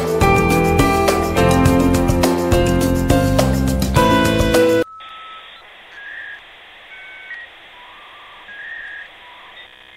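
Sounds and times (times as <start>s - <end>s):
whistle-like electronic tones: 4.8s - 9.9s.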